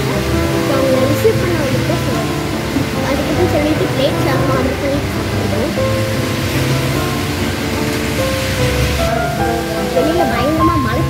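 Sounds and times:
music with long held notes: 0:00.0 - 0:11.0
steady hiss: 0:00.0 - 0:11.0.

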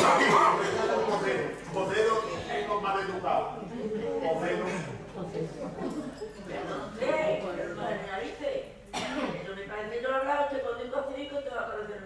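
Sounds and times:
stage dialogue: 0:00.0 - 0:12.0
person coughing: 0:08.9 - 0:09.4.

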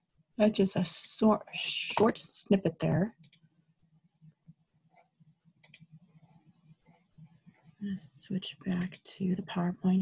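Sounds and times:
computer mouse clicks: 0:03.2 - 0:03.5, 0:05.0 - 0:06.2, 0:08.7 - 0:09.1.

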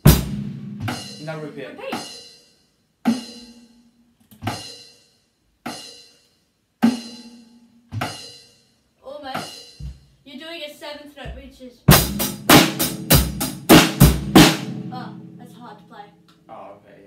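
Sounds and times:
drum hits: 0:00.0 - 0:02.3, 0:07.9 - 0:08.4, 0:09.2 - 0:10.1, 0:11.2 - 0:15.9.

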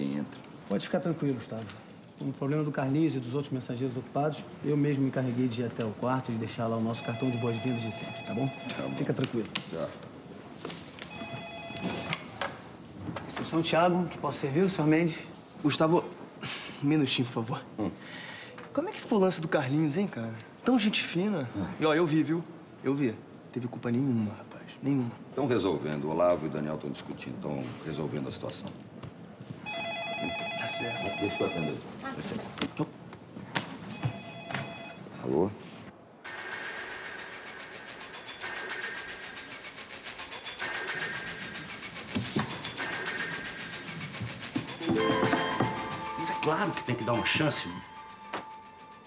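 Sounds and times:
electronic telephone ringing: 0:06.9 - 0:09.2, 0:11.1 - 0:12.3, 0:29.7 - 0:31.9, 0:34.0 - 0:35.1, 0:44.8 - 0:49.0.

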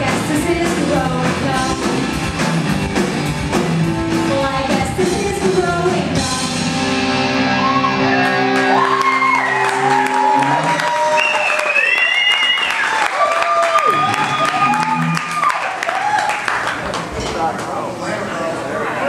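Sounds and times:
rock band playing: 0:00.0 - 0:11.3, 0:13.8 - 0:15.5
audience cheering and whooping: 0:07.4 - 0:16.8.

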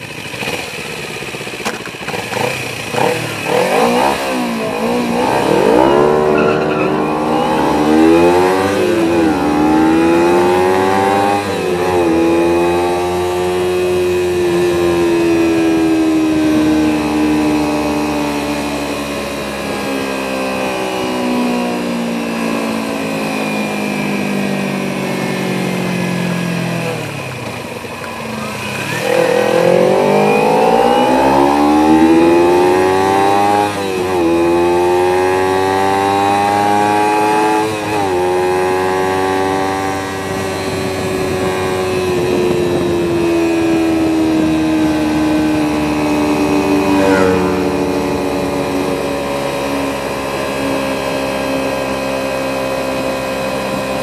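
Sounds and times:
motorcycle engine accelerating: 0:00.0 - 0:54.0.

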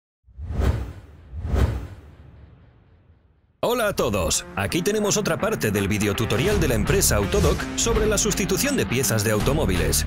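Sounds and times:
whoosh sound effects: 0:00.3 - 0:03.1.

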